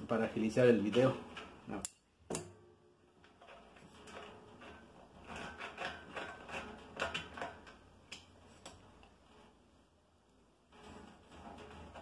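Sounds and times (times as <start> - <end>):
metallic clicks of threads turning: 1.3 - 2.5.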